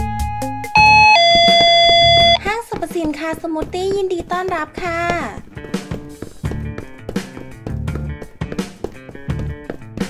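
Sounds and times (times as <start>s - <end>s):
electronic two-tone door chime: 0.7s - 2.4s.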